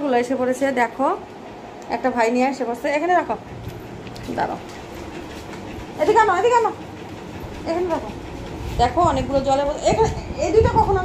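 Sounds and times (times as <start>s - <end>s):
woman speaking: 0.0s - 3.5s, 4.1s - 4.8s, 6.0s - 6.8s, 7.6s - 8.2s, 8.8s - 11.0s
low background rumble: 2.8s - 11.0s.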